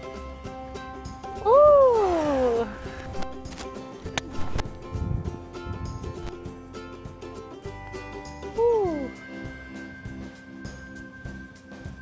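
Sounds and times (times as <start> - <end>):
background music: 0.0 - 12.0
person's drawn-out ohhh: 1.4 - 2.8, 8.6 - 9.2.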